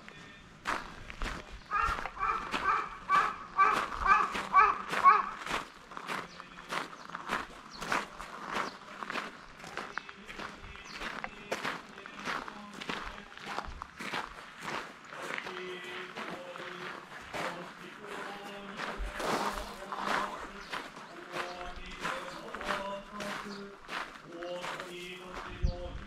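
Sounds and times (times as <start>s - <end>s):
footsteps on gravel: 0.0s - 26.0s
short repeated pitched calls: 1.6s - 5.5s.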